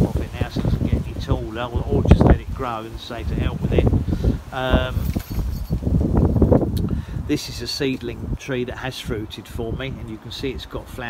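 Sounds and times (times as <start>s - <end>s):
branches rustling: 0.0s - 6.8s
microphone handling rumble: 0.0s - 10.0s
wind: 0.0s - 11.0s.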